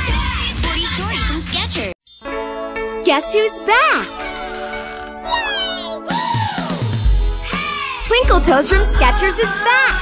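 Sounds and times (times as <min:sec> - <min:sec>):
commercial jingle music: 0:02.0 - 0:10.0
person singing woo: 0:05.3 - 0:07.9.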